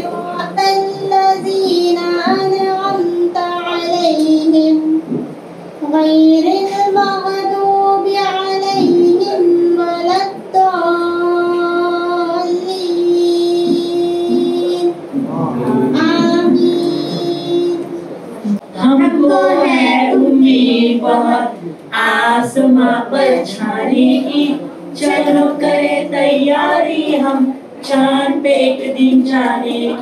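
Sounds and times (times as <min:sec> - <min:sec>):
girl singing: 0:00.0 - 0:05.2, 0:05.8 - 0:18.0, 0:18.7 - 0:30.0.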